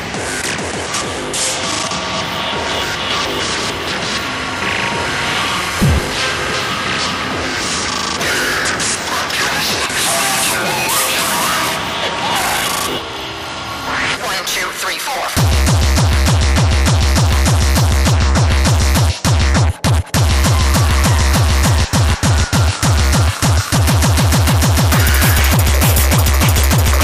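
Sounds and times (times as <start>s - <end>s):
noisy synth textures: 5.3s - 8.4s
low boom falling in pitch: 5.8s - 6.4s.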